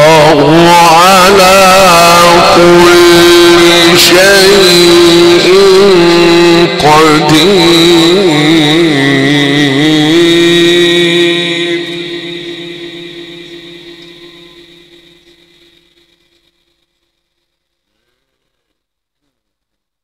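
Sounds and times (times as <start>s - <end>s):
man chanting a held note: 0.0s - 15.0s.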